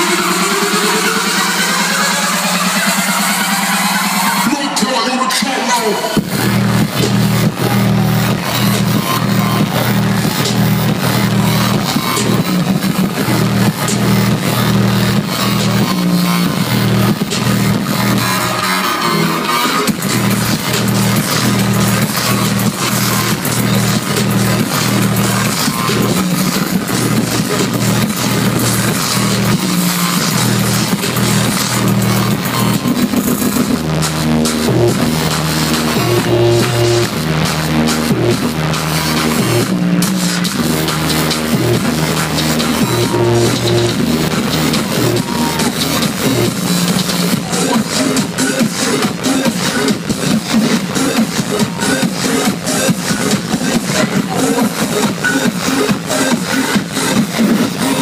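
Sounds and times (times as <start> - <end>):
electronic dance music: 0.0 - 58.0.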